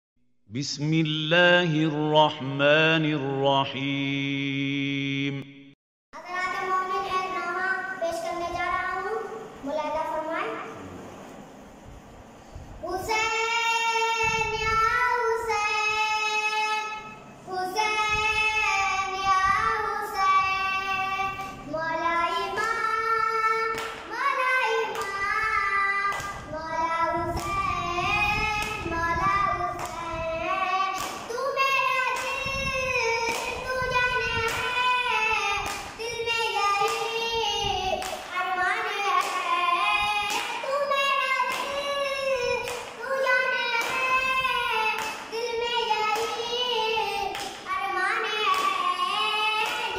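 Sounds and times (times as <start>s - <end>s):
boy singing a lament: 13.0s - 49.9s.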